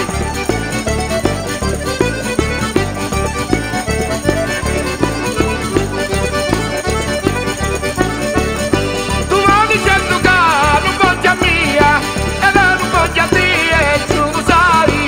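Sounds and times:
accordion folk dance tune: 0:00.0 - 0:15.0
bouncing bass beat: 0:00.0 - 0:15.0
person singing: 0:09.0 - 0:15.0.

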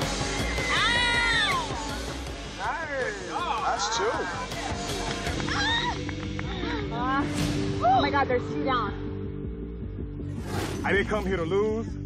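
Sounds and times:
background music: 0:00.0 - 0:12.0
woman screaming: 0:00.3 - 0:01.9, 0:05.5 - 0:06.1.

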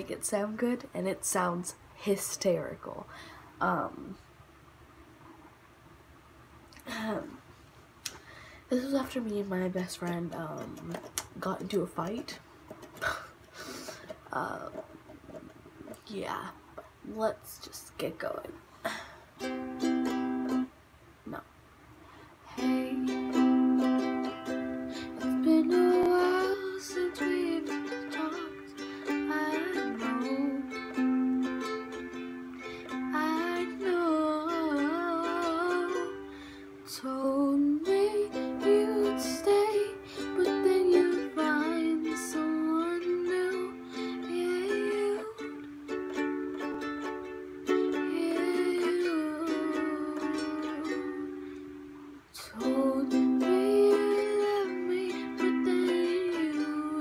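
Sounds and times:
girl singing: 0:00.0 - 0:04.3, 0:06.8 - 0:07.4, 0:08.7 - 0:13.4, 0:14.2 - 0:21.6, 0:22.4 - 0:57.0
ukulele strumming chords: 0:08.8 - 0:16.5, 0:19.4 - 0:21.4, 0:22.5 - 0:57.0.

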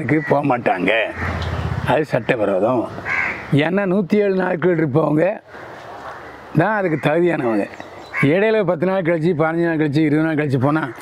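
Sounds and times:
man talking: 0:00.0 - 0:01.2, 0:01.8 - 0:05.5, 0:06.6 - 0:11.0.

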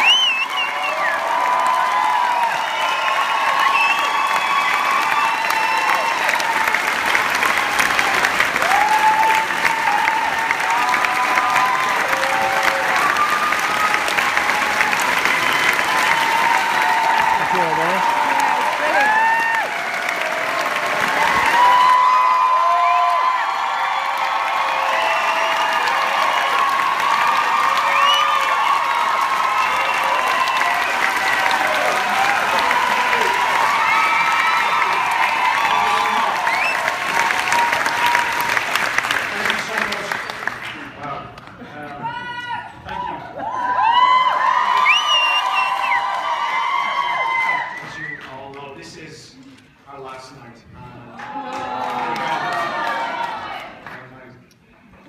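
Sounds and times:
shouts and whoops: 0:00.0 - 0:06.9, 0:07.5 - 0:38.7, 0:41.9 - 0:48.0, 0:51.2 - 0:53.7
audience applauding: 0:00.0 - 0:49.1, 0:50.9 - 0:54.7.

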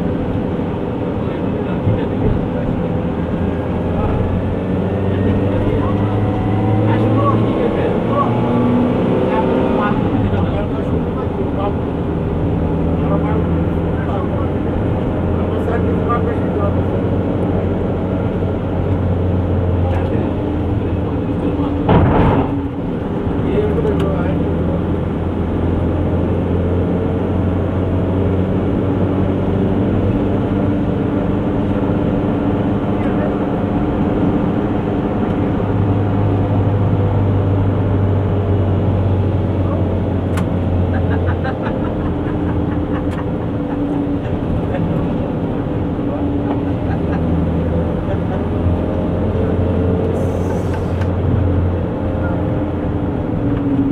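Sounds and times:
car engine and road noise: 0:00.0 - 0:53.9
loud thump: 0:21.8 - 0:22.8.

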